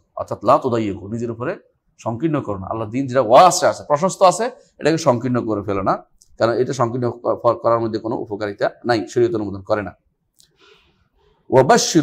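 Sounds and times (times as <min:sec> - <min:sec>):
man lecturing: 0:00.0 - 0:10.0, 0:11.4 - 0:12.0.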